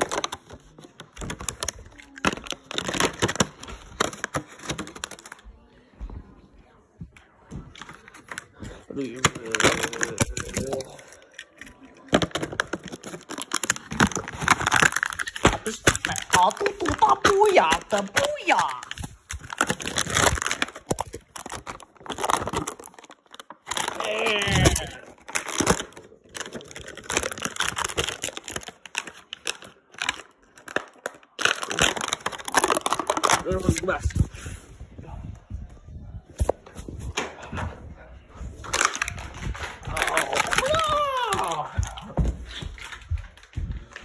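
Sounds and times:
packaging crackling and tearing: 0.0 - 5.4, 7.8 - 34.2, 38.6 - 42.0.

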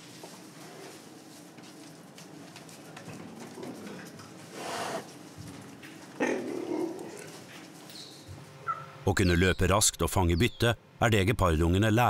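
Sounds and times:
cheetah cub rough call: 4.5 - 5.1, 6.2 - 7.3.

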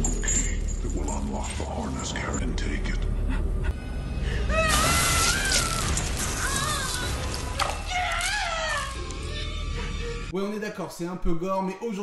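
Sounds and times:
woman screaming: 4.5 - 9.8.

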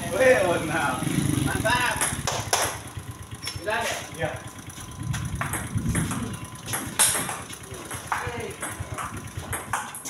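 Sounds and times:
voices talking: 0.0 - 10.0
table tennis ball clicking: 5.1 - 10.0.

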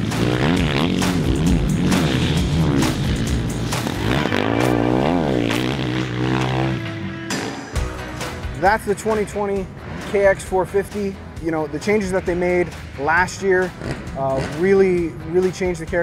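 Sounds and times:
motocross engine revving: 0.0 - 7.9, 8.6 - 15.5
background music: 0.0 - 16.0.

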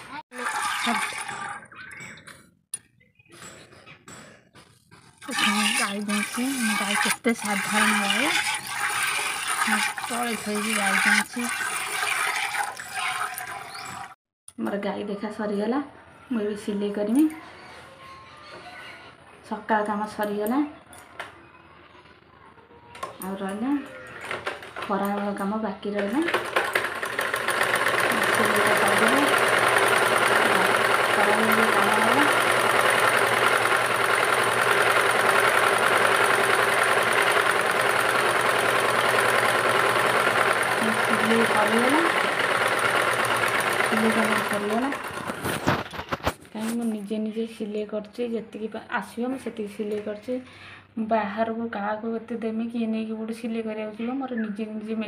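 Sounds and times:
sewing machine rattling: 0.0 - 1.6, 5.2 - 14.2, 24.2 - 25.3, 26.0 - 46.4
milk squirting into steel pail: 0.4 - 1.7, 5.2 - 14.2.

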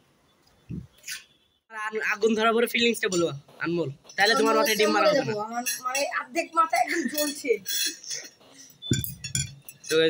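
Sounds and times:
plates and cutlery clinking: 4.2 - 10.0.

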